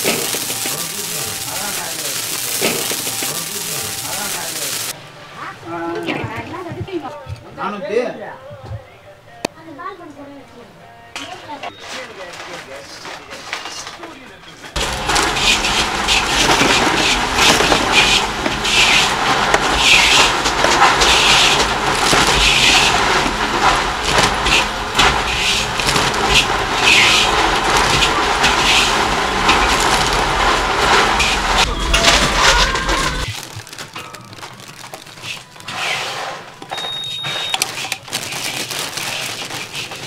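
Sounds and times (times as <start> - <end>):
heat sealer high tone: 0.0 - 5.0, 14.8 - 33.3
plastic bags crinkling: 0.0 - 5.0, 14.8 - 35.8, 37.4 - 40.0.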